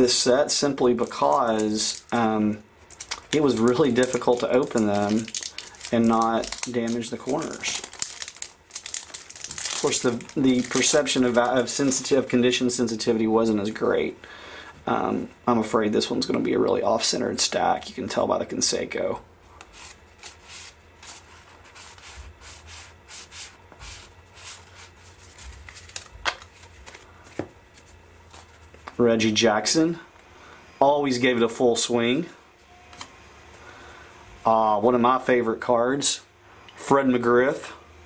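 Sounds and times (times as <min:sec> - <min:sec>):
card pack wrapper crinkling: 0:00.8 - 0:02.2, 0:02.9 - 0:12.3, 0:24.4 - 0:28.6.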